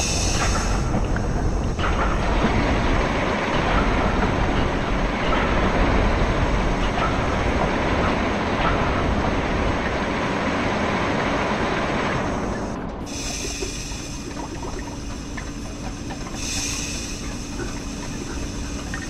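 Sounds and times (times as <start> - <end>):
machinery rumbling and clattering: 0.0 - 19.0.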